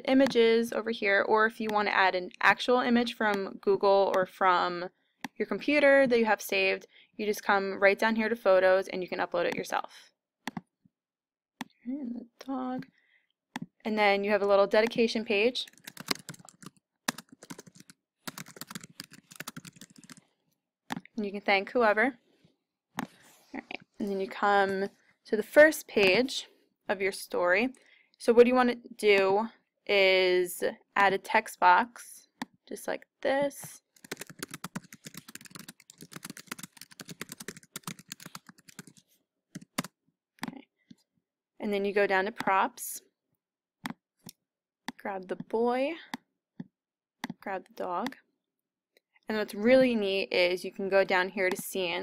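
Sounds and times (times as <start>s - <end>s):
typing on computer keyboard: 15.6s - 20.2s, 33.9s - 39.0s.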